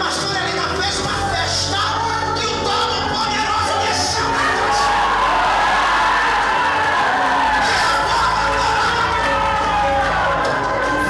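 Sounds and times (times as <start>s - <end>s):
live worship music: 0.0s - 11.0s
crowd cheering and whooping: 3.7s - 11.0s.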